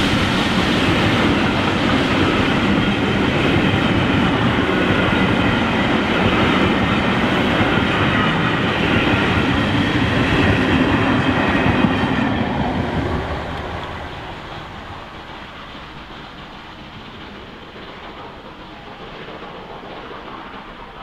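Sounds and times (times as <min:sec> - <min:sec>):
train wheels clattering on rails: 0:00.0 - 0:21.0.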